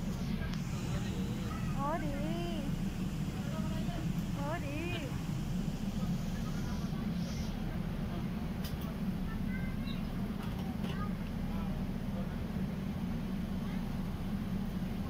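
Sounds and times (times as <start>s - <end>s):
voices talking: 0.0s - 10.3s
bus engine rumble: 0.0s - 15.0s.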